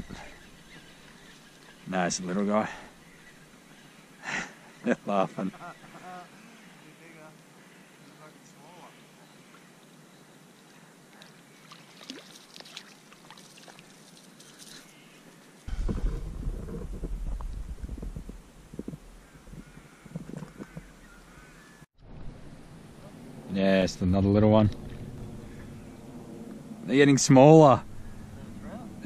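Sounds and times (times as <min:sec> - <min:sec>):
water splashes: 0:11.1 - 0:14.7
microphone handling rumble: 0:15.7 - 0:21.3, 0:24.4 - 0:26.6.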